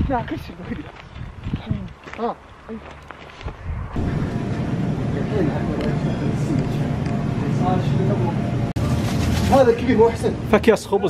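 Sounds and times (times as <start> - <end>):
busy grocery store noise: 4.0 - 11.0.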